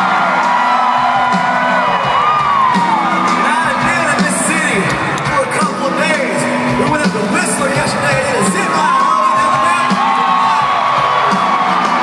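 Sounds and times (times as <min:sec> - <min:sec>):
crowd cheering and whooping: 0:00.0 - 0:05.2, 0:08.4 - 0:12.0
live country band playing: 0:00.0 - 0:12.0.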